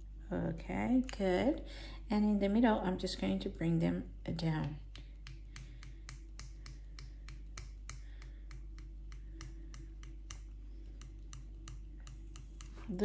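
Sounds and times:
modelling tool clicking on sugar paste: 4.5 - 13.0.

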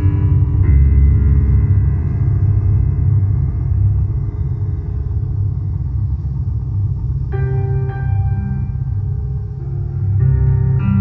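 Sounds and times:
low drone of piano and cello: 0.0 - 11.0.

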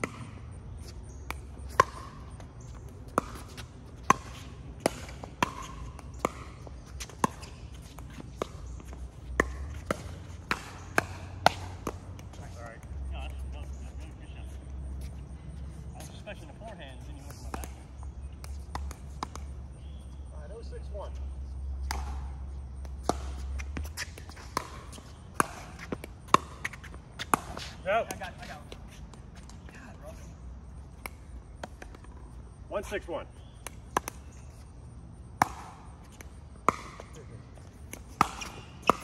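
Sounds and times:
players' voices: 1.4 - 21.4, 23.0 - 34.6.

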